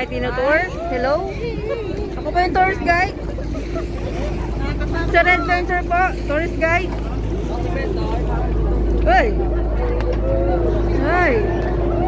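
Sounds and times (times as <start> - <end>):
faint voices: 0.0 - 12.0
ferry engine humming: 0.0 - 12.0
wind buffeting microphone: 0.0 - 12.0.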